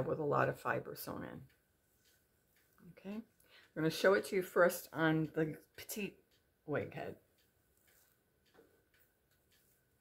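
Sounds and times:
faint ticks and rustles of wig: 0.0s - 10.0s.

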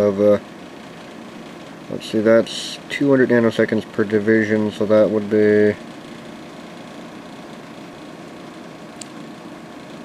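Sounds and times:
test equipment hum and hiss: 0.0s - 10.0s.

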